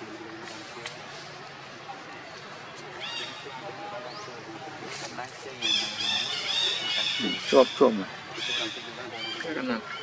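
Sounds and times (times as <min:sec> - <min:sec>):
indistinct voices talking: 0:02.8 - 0:10.0.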